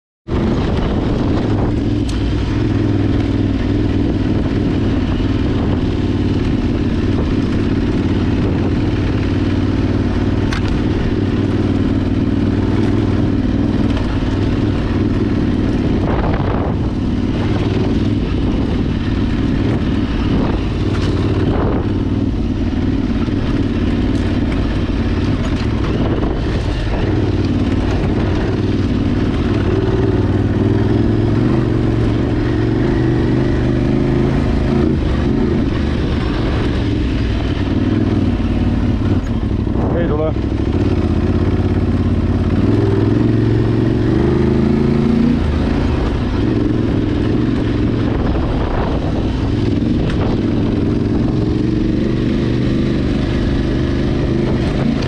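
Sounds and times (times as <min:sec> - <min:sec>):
motorcycle engine running: 0:00.3 - 0:55.0.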